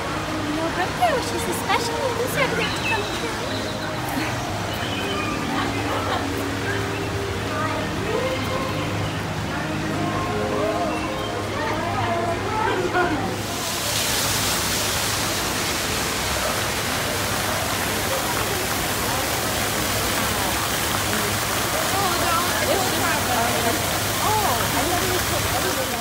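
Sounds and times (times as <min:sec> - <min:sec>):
faint voices of people: 0:00.0 - 0:26.0
fountain jet splashing: 0:00.0 - 0:26.0.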